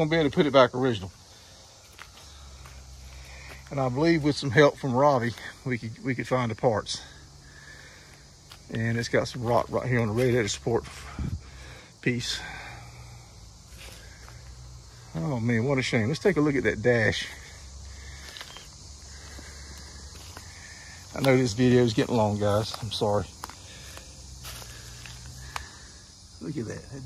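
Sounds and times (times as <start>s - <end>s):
footsteps on dry leaves: 1.1s - 4.2s, 17.2s - 25.9s.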